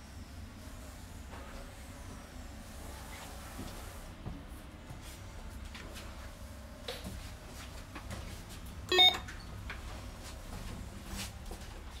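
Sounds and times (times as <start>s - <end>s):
short electronic beep: 8.9s - 9.3s.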